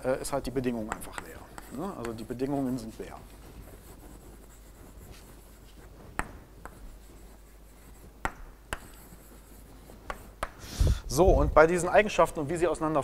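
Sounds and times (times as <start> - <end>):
chalk scratching on blackboard: 0.3 - 10.6
chalk tapping on blackboard: 0.3 - 10.6.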